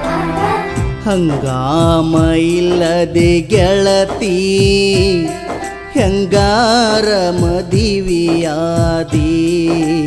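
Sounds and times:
drum beats: 0.0 - 10.0.

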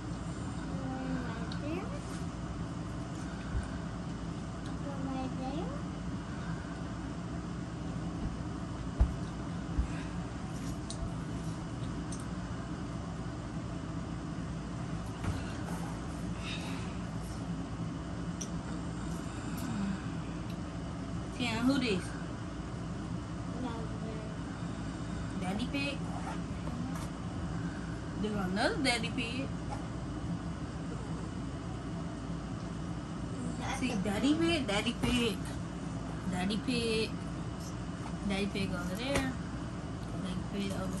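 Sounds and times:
low room hum: 0.0 - 41.0.

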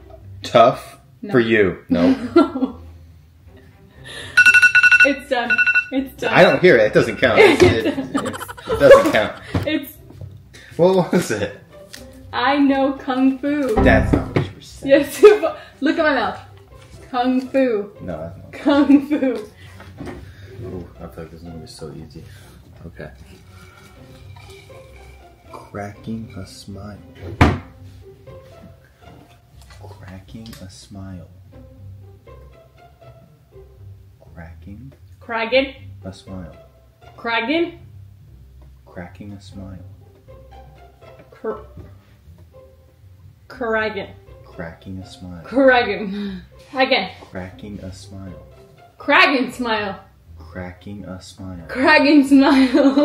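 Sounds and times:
background music: 0.0 - 53.0
phone timer alarm beeping: 4.4 - 7.4
loud thump: 13.8 - 14.6.

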